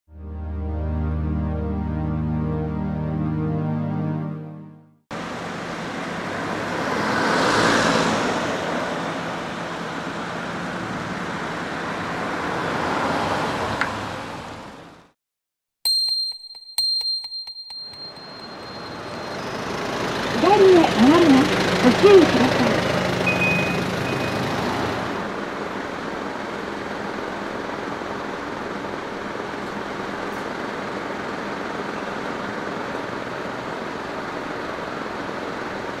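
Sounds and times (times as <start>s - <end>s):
road traffic noise: 5.1s - 15.2s, 18.4s - 36.0s
vehicle passing: 5.2s - 14.9s, 19.0s - 25.3s
faint high chirp: 17.4s - 19.7s, 23.3s - 24.4s.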